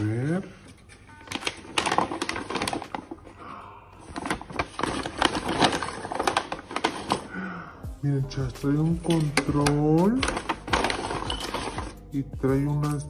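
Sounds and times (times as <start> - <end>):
paper envelope tearing and crinkling: 1.3 - 3.3, 4.0 - 7.4, 8.7 - 12.0.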